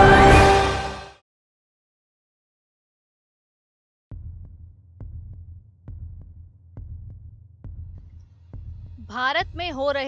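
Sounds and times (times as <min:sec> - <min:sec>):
throbbing heartbeat pulse: 0:04.1 - 0:09.7.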